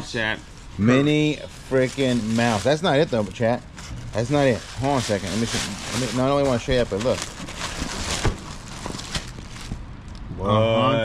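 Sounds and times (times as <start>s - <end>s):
plastic bag crinkling: 0.5s - 9.9s.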